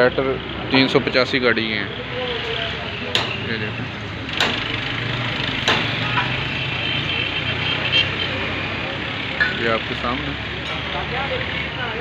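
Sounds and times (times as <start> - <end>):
sharp knocks: 3.1 - 3.5, 4.3 - 4.8, 5.6 - 6.4.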